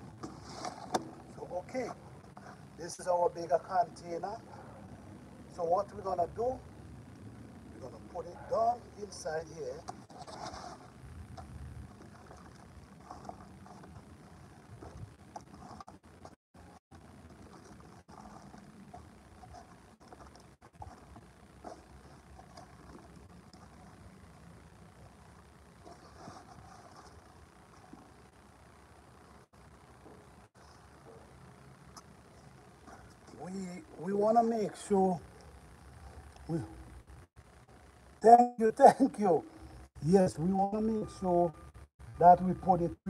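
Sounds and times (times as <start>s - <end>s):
faint outdoor background noise: 0.0s - 43.0s.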